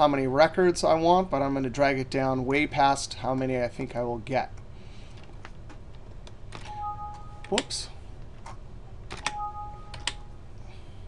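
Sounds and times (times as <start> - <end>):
electronic alert beep: 6.7 - 7.6, 9.3 - 10.4
keyboard keys pressed: 9.1 - 10.3.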